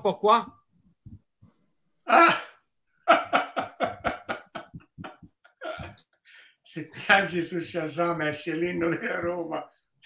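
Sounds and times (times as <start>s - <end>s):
person laughing: 2.1s - 6.0s
person coughing: 5.6s - 6.0s.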